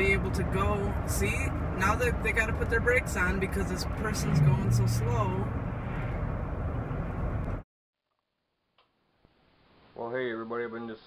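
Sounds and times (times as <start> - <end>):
road and engine noise inside car: 0.0 - 7.6.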